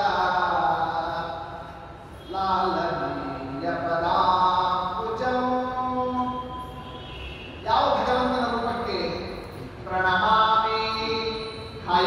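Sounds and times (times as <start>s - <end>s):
man chanting: 0.0s - 6.5s, 7.6s - 12.0s.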